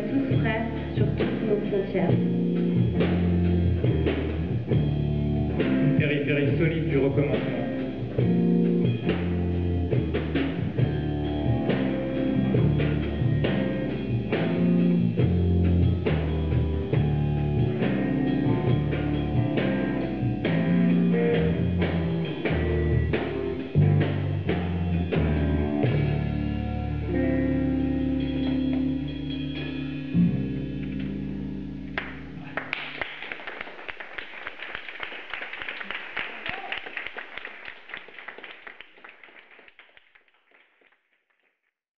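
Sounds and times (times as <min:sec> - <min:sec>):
live rock band playing: 0:00.0 - 0:32.7.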